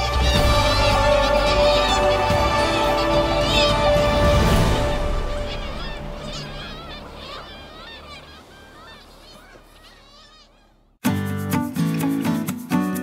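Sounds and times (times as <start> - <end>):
seabirds calling: 0.0 - 11.0.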